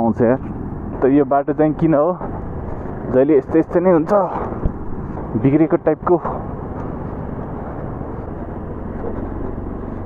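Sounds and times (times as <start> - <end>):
motorcycle engine and road noise: 0.0 - 10.0.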